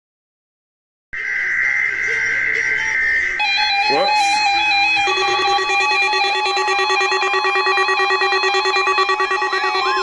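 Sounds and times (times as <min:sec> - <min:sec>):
harsh buzzing tone: 0:01.2 - 0:10.0
alert beeps: 0:02.9 - 0:10.0
broadcast voice speaking: 0:03.7 - 0:04.6.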